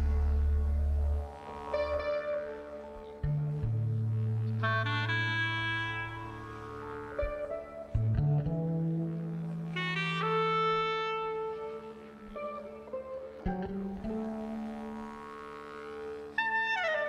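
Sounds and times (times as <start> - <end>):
clarinet playing held notes: 0.0 - 17.0
low sustained bass note: 0.0 - 17.0.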